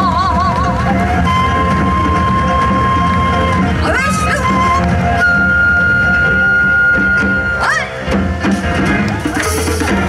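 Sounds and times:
drum and bass accompaniment: 0.0s - 10.0s.

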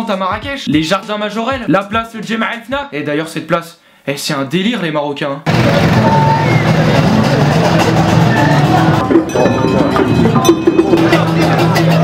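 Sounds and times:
crowd hubbub: 5.5s - 12.0s.

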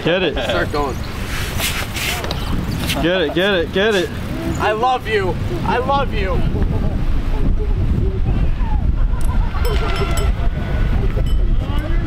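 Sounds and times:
voices calling out faintly: 0.0s - 12.0s
wind rumble on microphone: 0.0s - 12.0s.

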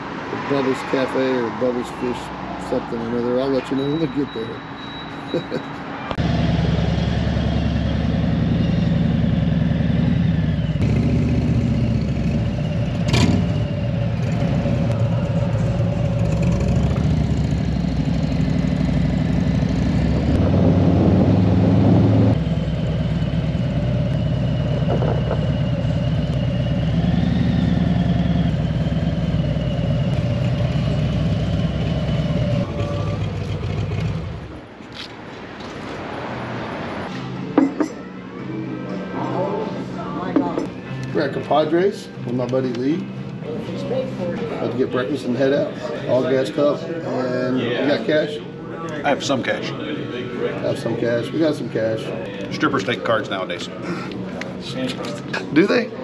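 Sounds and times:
wind and road noise: 0.0s - 39.1s
motorcycle engine running: 6.2s - 34.6s.

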